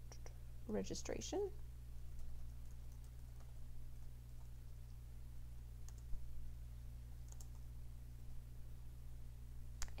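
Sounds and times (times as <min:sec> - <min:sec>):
low electrical hum: 0:00.0 - 0:10.0
keyboard keystrokes: 0:05.8 - 0:06.2, 0:07.2 - 0:07.6.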